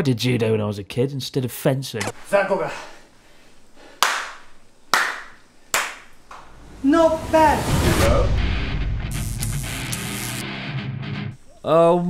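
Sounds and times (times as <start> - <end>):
slow handclaps: 4.0 - 6.5.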